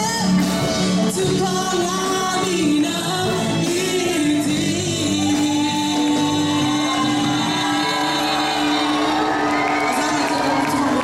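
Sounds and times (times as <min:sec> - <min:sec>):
live rock band: 0:00.0 - 0:11.0
woman singing into a microphone: 0:00.0 - 0:11.0.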